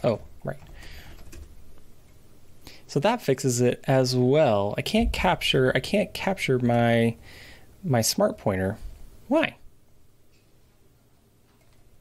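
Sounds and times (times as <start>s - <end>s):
computer keyboard typing: 0.1s - 1.6s, 11.5s - 11.9s.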